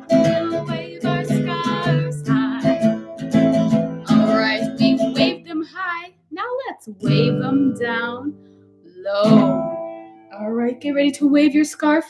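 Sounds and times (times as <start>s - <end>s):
woman singing: 0.0s - 3.2s, 4.0s - 12.0s
acoustic guitar strumming: 0.0s - 6.1s, 6.9s - 11.7s.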